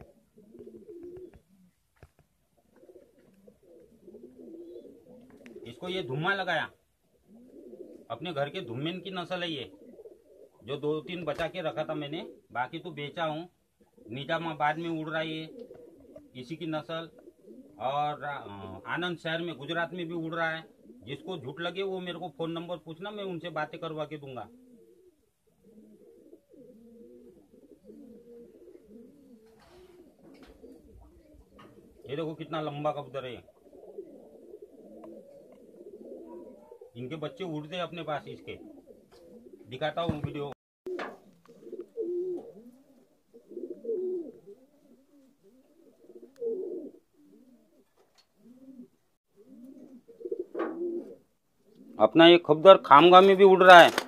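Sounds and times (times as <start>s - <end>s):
rustle of feathers: 0.0s - 5.7s, 15.5s - 16.3s, 26.0s - 32.0s, 53.1s - 54.0s
pigeons cooing: 0.0s - 53.9s.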